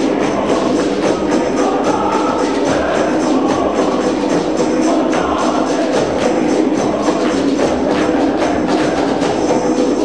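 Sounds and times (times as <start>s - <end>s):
hand drums beating: 0.0s - 10.0s
male choir singing: 0.0s - 10.0s.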